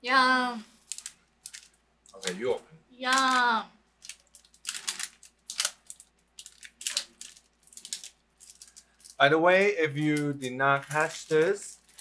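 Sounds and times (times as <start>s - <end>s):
plastic snack bag crinkling: 0.8s - 2.4s, 3.2s - 12.0s.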